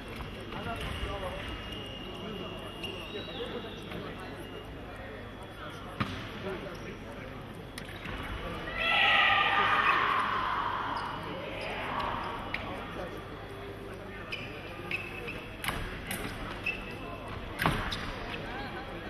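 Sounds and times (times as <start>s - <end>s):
voices shouting: 8.7s - 12.7s.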